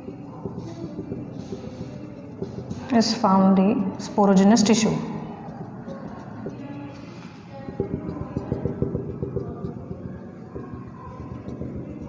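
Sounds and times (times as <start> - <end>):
marker pen tapping whiteboard: 0.0 - 3.2, 5.3 - 12.0.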